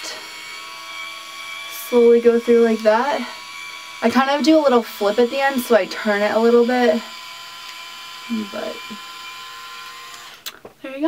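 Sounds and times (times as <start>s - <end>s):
hair styler motor whine: 0.0s - 11.0s.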